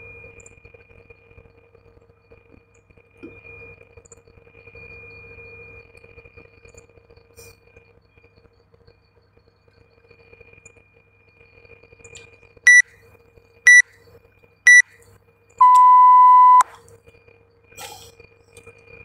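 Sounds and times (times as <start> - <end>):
long low timer beep: 15.6 - 16.6
short high timer beeps: 15.6 - 16.6.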